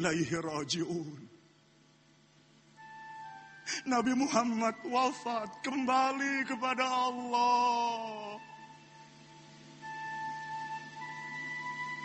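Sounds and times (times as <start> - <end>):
man speaking: 0.0 - 1.3, 3.7 - 8.4
soft background music note: 0.0 - 12.0.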